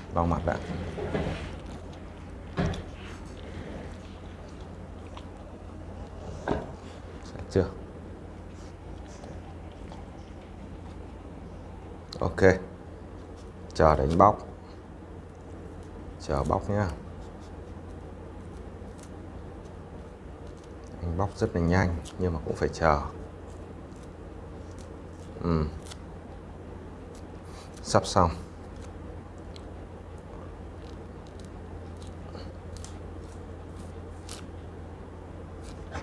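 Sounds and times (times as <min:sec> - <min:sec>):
steady low hum: 0:00.0 - 0:36.0
orange peel ticking: 0:13.1 - 0:36.0.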